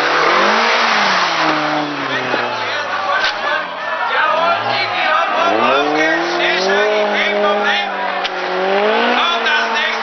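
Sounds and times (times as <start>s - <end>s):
car engine revving hard: 0.0s - 10.0s.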